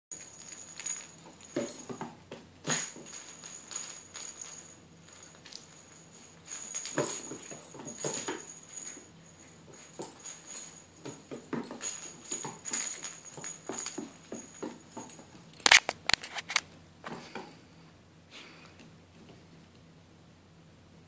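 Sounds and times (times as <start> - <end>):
small bell jingling: 0.1 - 15.6.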